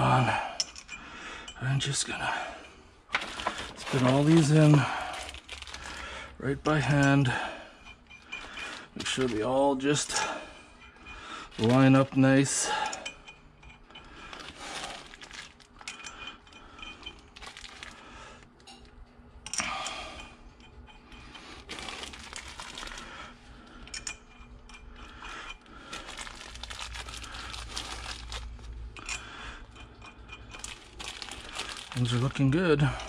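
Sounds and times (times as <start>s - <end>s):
bolts being handled: 0.0s - 1.6s, 3.1s - 17.9s, 23.8s - 33.0s
plastic bag crinkling: 3.1s - 7.0s, 8.4s - 10.2s, 11.5s - 12.2s, 14.3s - 15.8s, 17.3s - 18.0s, 21.5s - 23.3s, 25.9s - 28.7s, 30.6s - 32.7s.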